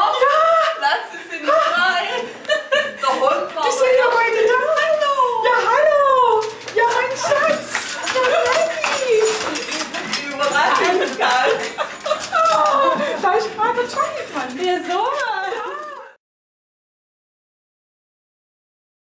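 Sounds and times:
voices: 0.0 - 16.2
rustling: 6.0 - 16.2.

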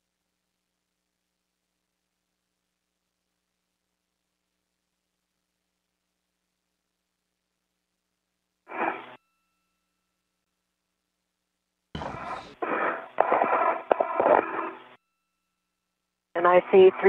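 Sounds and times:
crackling radio noise and clicks: 8.7 - 9.2, 12.0 - 15.0, 16.4 - 17.0
thin radio noise: 12.0 - 15.0, 16.4 - 17.0.

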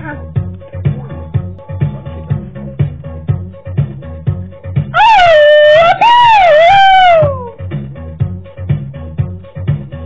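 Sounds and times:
background music with steady beat: 0.0 - 10.0
cartoon puppy whining: 5.0 - 7.6.

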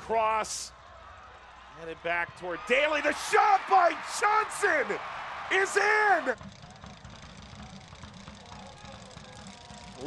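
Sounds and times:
low stadium rumble: 0.7 - 10.0.

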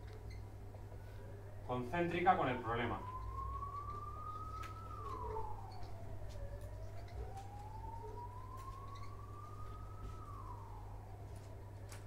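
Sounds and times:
distant siren wailing: 0.0 - 12.0.

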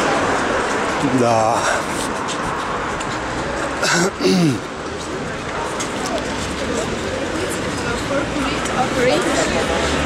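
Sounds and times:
faint voices of passers-by: 0.0 - 10.0
passing cars: 0.0 - 10.0.

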